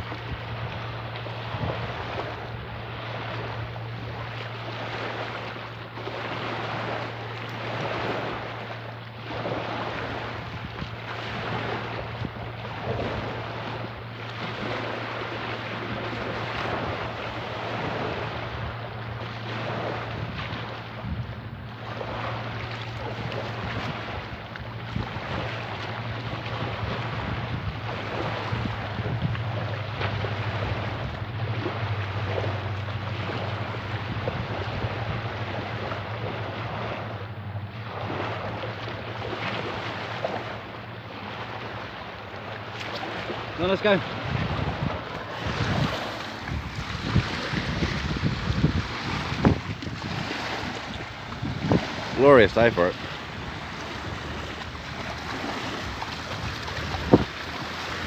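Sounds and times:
wind buffeting microphone: 0.0s - 7.1s, 7.7s - 41.8s, 42.4s - 58.0s
small waves breaking on shore: 0.0s - 58.0s
steady low hum: 0.0s - 58.0s.

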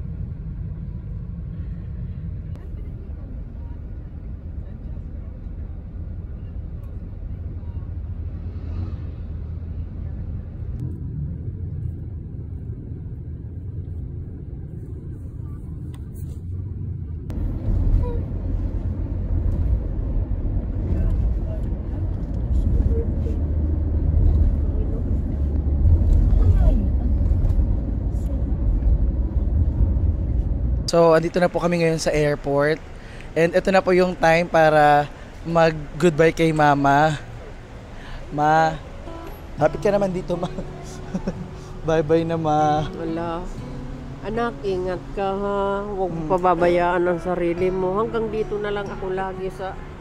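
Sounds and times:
car cabin road rumble: 0.0s - 50.0s.

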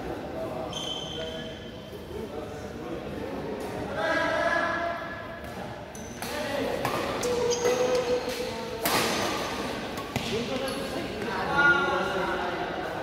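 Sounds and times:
rackets smacking shuttlecock: 6.2s - 10.6s.

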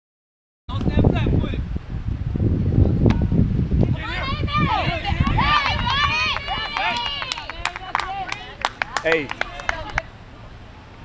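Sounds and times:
wind rumbling on microphone: 0.7s - 11.0s
women shouting and cheering: 3.9s - 10.1s
sharp hand claps: 5.2s - 10.1s.

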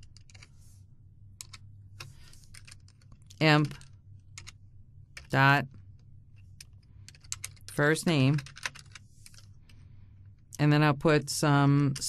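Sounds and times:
computer keyboard keystrokes: 0.0s - 0.5s, 1.4s - 1.6s, 2.5s - 4.6s, 6.6s - 7.8s, 8.4s - 9.0s
faint low hum: 0.0s - 12.0s.

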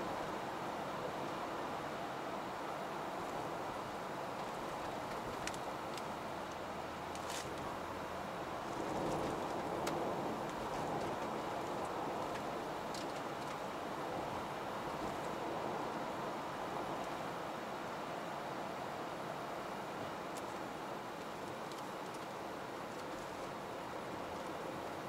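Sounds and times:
in-cabin road and tyre noise: 0.0s - 25.0s.

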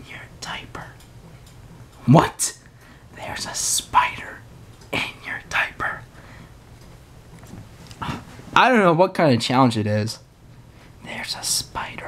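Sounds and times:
person whispering: 0.0s - 1.0s, 3.2s - 4.4s, 5.0s - 6.1s, 8.0s - 8.3s, 11.0s - 12.0s.

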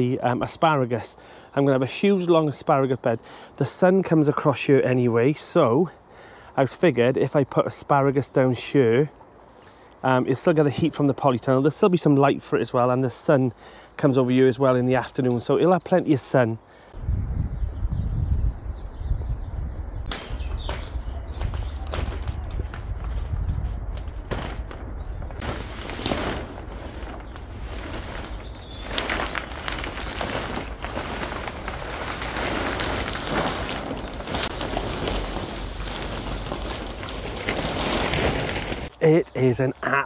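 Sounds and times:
plastic sheeting rustling and flapping: 20.0s - 39.0s.

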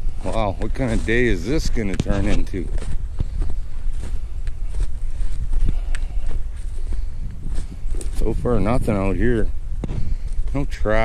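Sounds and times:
footsteps through snow and brush: 0.0s - 11.0s
wind buffeting microphone: 0.0s - 11.0s.

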